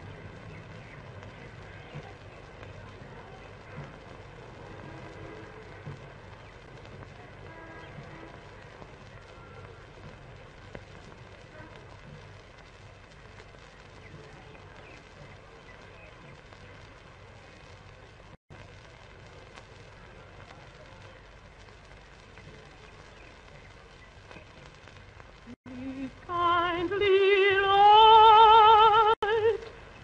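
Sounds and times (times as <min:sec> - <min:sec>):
faint scattered ambient sounds: 0:00.0 - 0:30.0
film soundtrack hum and hiss: 0:00.0 - 0:30.0.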